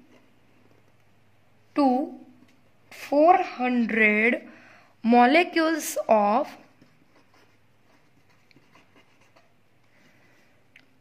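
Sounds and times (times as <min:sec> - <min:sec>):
pen scratching on paper: 0:06.4 - 0:09.6.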